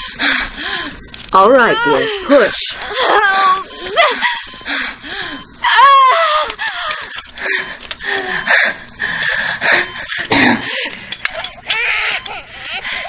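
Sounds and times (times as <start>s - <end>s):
woman gasping and strained breathing: 0.0s - 1.0s
woman crying out in pain: 1.6s - 4.2s, 5.6s - 7.1s.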